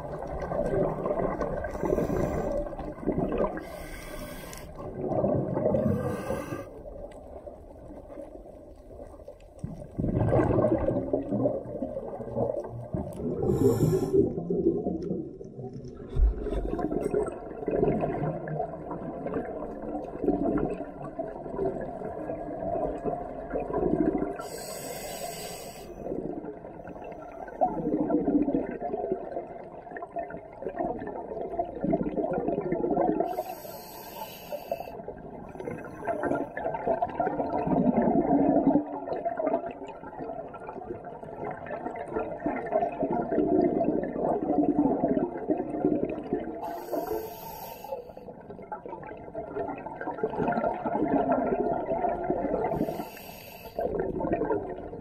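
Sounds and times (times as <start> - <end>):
bubbles gurgling underwater: 0.0 - 24.6, 26.0 - 33.5, 35.0 - 47.2, 48.2 - 53.1, 53.7 - 55.0
regulator hissing inhales: 1.7 - 2.7, 3.6 - 4.8, 5.8 - 6.7, 13.5 - 14.3, 24.4 - 26.0, 33.3 - 35.0, 46.6 - 48.1, 52.7 - 53.8.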